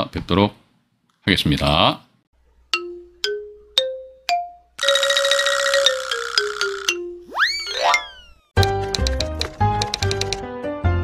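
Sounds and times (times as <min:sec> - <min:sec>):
descending notes: 0:05.8 - 0:08.5.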